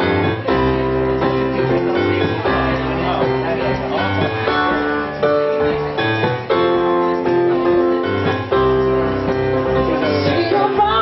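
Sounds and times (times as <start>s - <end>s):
keyboard chords: 0.0s - 11.0s.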